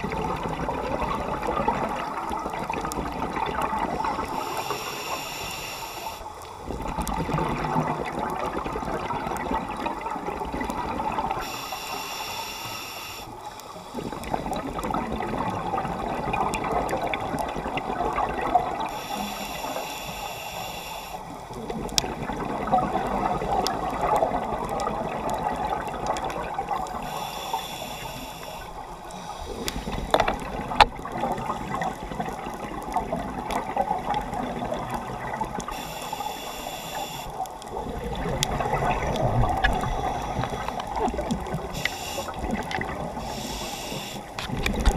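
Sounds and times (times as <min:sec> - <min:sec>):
exhaled bubbles gurgling: 0:00.0 - 0:44.9
diver breathing through regulator: 0:04.1 - 0:06.3, 0:11.4 - 0:14.2, 0:18.8 - 0:21.4, 0:26.9 - 0:30.4, 0:35.7 - 0:37.4, 0:39.6 - 0:44.4.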